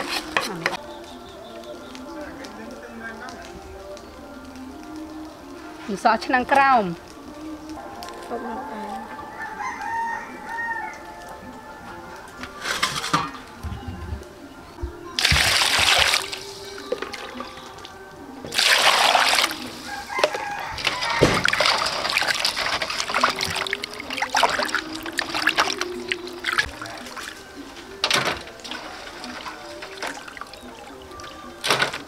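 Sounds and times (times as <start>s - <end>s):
water gushing into metal pot: 15.2s - 17.9s, 18.5s - 27.5s, 28.1s - 32.0s
water running and splashing: 15.2s - 32.0s.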